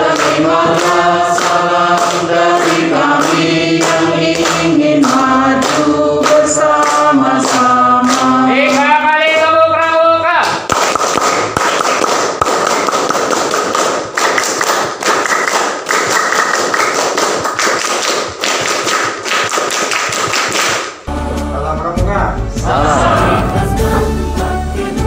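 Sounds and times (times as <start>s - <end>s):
hands clapping: 0.0s - 21.1s.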